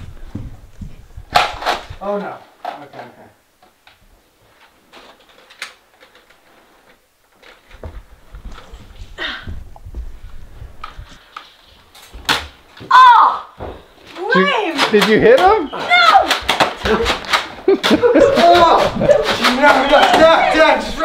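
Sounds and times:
footsteps: 0:00.0 - 0:02.4, 0:06.1 - 0:21.0
handling noise: 0:13.6 - 0:21.0.

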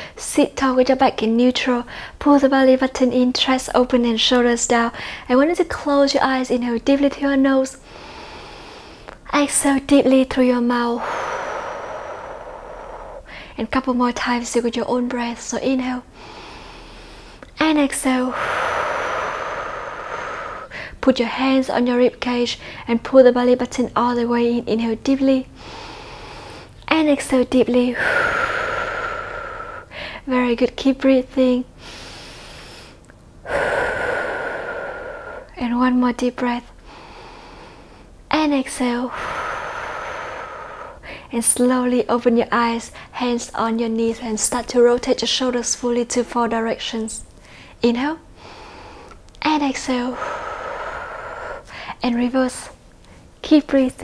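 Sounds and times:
deep exhale through the mouth: 0:18.3 - 0:21.0, 0:31.8 - 0:35.6.

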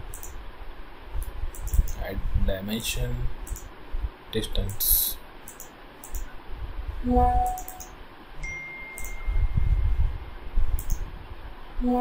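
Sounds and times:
high notification chime: 0:08.4 - 0:09.8.

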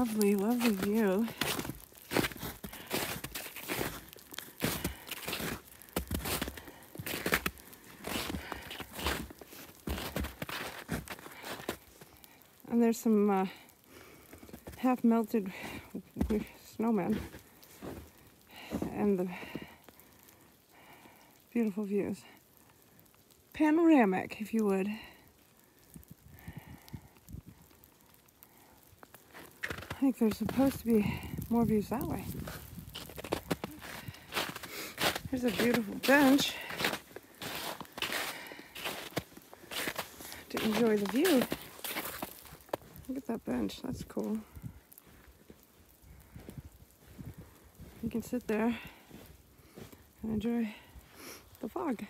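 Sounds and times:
footsteps on packed snow: 0:00.0 - 0:13.6, 0:14.2 - 0:19.9, 0:29.3 - 0:52.0
water dripping from trees: 0:00.0 - 0:52.0.

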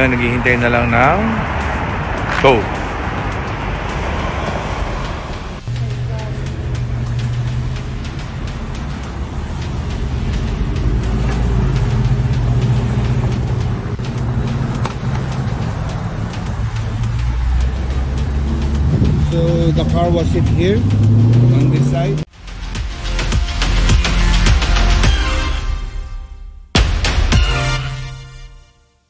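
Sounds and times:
broad rushing noise: 0:00.0 - 0:20.1
vehicle engine humming: 0:00.0 - 0:22.3.

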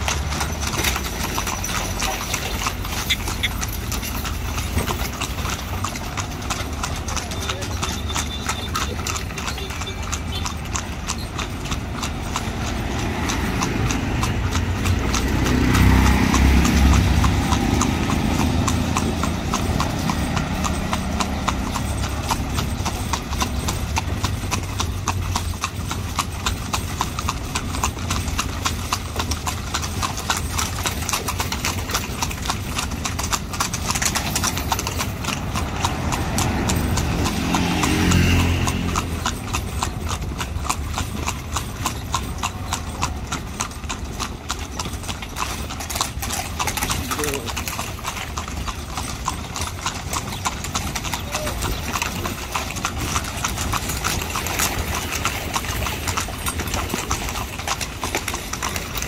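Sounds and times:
hooves clip-clopping on asphalt: 0:00.0 - 0:59.0
motor vehicle passing: 0:00.0 - 0:59.0.

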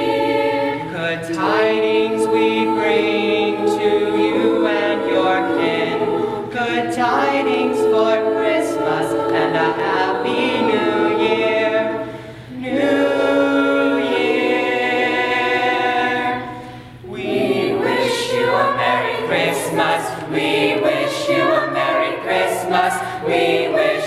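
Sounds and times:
choir singing held chords: 0:00.0 - 0:24.0.

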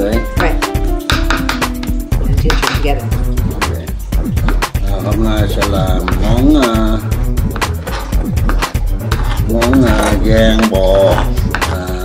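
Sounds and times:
backing music with steady beat: 0:00.0 - 0:12.0.

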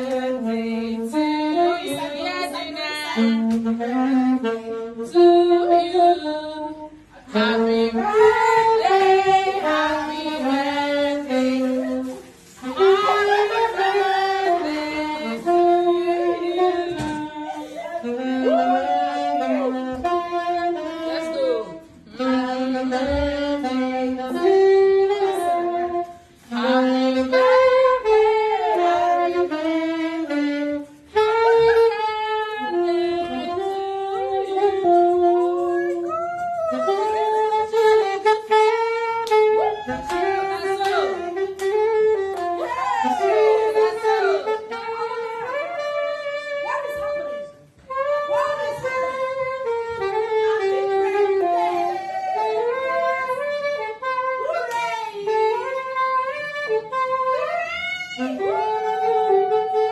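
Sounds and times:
saxophone slow melody: 0:00.0 - 0:59.9.

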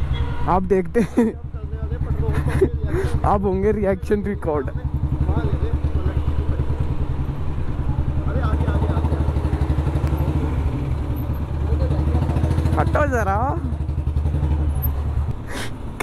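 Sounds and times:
motorcycle engine idling: 0:01.1 - 0:16.0.

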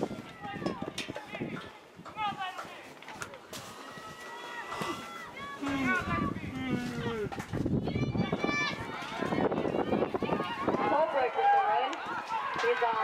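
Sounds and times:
overlapping talk: 0:04.3 - 0:13.0.

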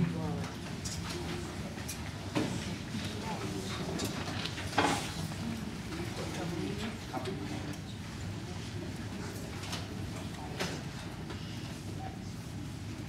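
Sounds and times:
murmur of voices: 0:00.0 - 0:13.0.

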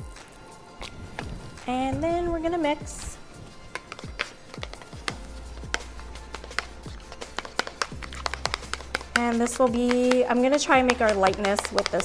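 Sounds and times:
faint background music: 0:00.0 - 0:12.0
whisk tapping plastic bowl: 0:02.5 - 0:12.0.

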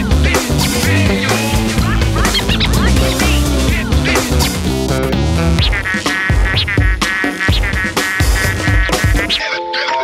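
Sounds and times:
music track: 0:00.8 - 0:06.1
duck quacking: 0:01.2 - 0:04.4, 0:05.5 - 0:09.5.

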